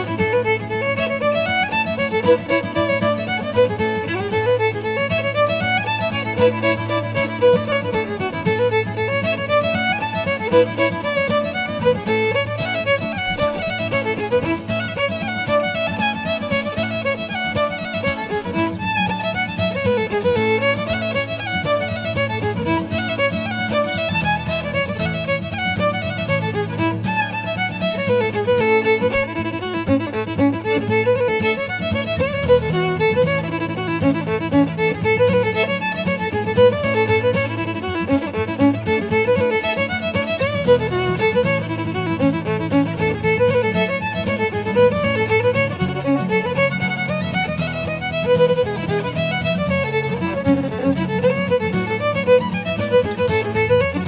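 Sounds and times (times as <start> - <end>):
acoustic guitar accompaniment: 0.0 - 54.0
fiddle playing fast dance tune: 0.0 - 54.0.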